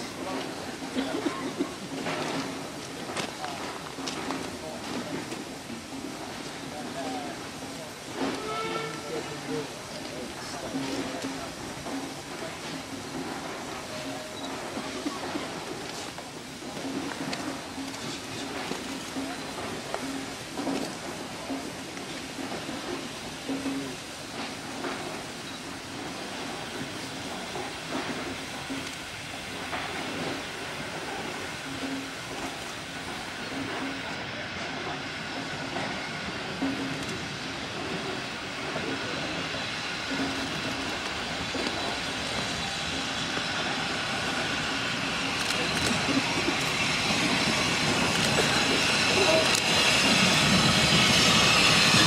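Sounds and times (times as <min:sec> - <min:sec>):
steam hiss: 0:00.0 - 0:52.0
steam locomotive working: 0:00.0 - 0:52.0.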